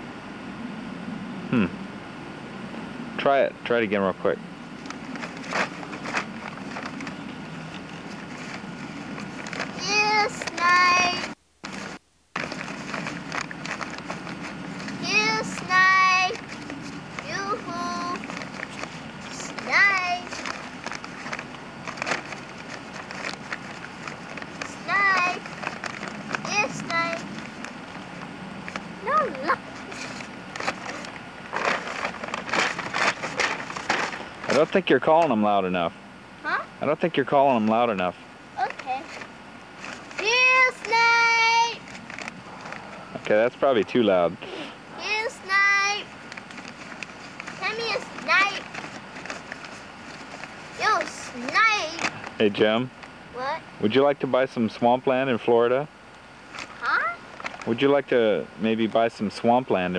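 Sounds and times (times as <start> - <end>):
steady low hum: 0.0 - 59.9
boy calling out: 9.8 - 11.3, 15.0 - 16.4, 17.2 - 18.2, 19.3 - 20.4, 24.7 - 25.4, 26.5 - 27.3, 29.0 - 29.7, 36.4 - 36.7, 38.6 - 39.1, 40.2 - 41.8, 44.5 - 46.1, 47.6 - 48.6, 50.8 - 52.1, 53.4 - 53.6, 56.8 - 57.2.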